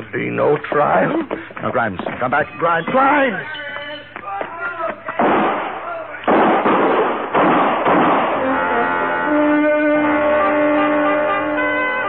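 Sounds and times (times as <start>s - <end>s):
gunshots with echoing decay: 5.2s - 8.6s.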